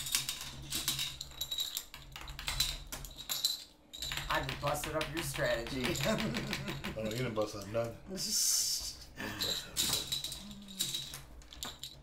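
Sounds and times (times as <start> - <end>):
plastic checkers clicking: 0.0 - 7.9.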